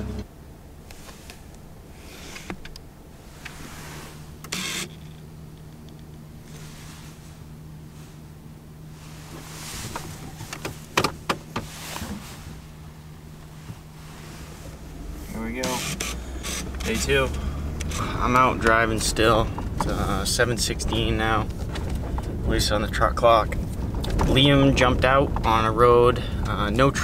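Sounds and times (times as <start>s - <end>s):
truck engine idling: 0.0s - 26.8s
knocks and clicks: 9.9s - 11.7s.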